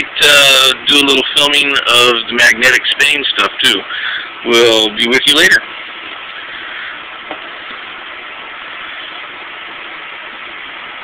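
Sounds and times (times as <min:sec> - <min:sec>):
steady hiss of room noise: 0:00.0 - 0:11.0.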